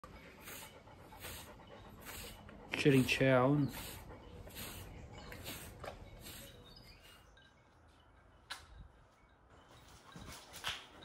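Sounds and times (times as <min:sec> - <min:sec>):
dog panting: 0:00.0 - 0:07.2.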